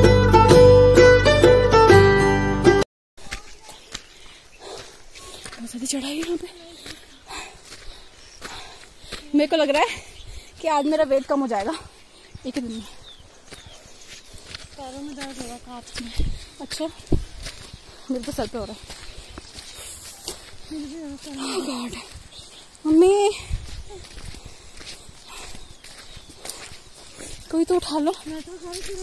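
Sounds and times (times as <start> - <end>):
footsteps on a trail: 3.2 - 29.0
woman speaking: 5.6 - 6.9, 9.3 - 10.0, 10.6 - 13.0, 14.8 - 17.0, 18.1 - 18.8, 20.7 - 22.1, 22.8 - 24.0, 27.5 - 29.0.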